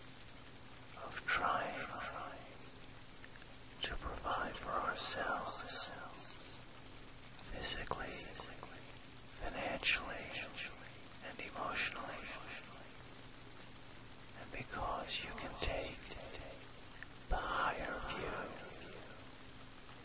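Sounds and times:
faint low steady tone: 0.0s - 20.0s
recorded rain: 0.0s - 20.0s
person whispering: 0.9s - 2.7s, 3.8s - 6.6s, 7.4s - 13.0s, 14.3s - 19.3s.

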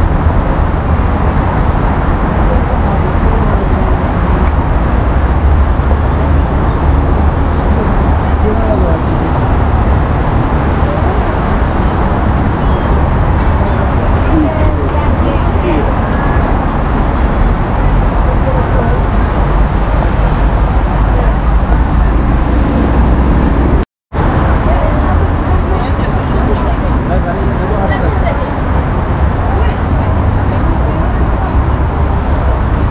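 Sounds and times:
busy road traffic rumble: 0.0s - 32.9s
passers-by's voices: 0.0s - 32.9s.

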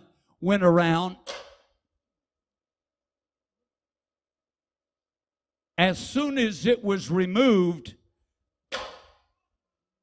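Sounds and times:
whip swish: 8.7s - 9.2s.

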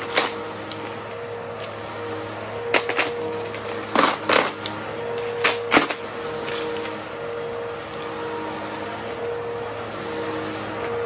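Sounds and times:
upright vacuum cleaner running: 0.0s - 11.0s.

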